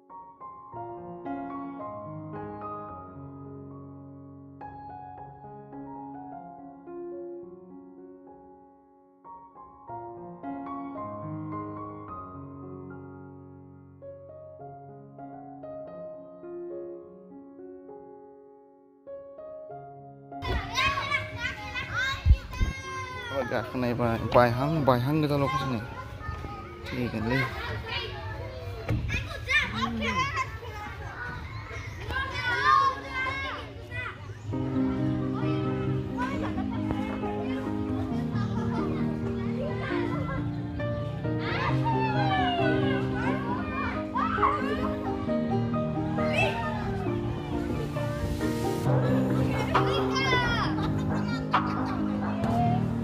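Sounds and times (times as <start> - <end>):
children calling out and chattering: 20.4 - 53.0
background music with sustained notes: 34.5 - 53.0.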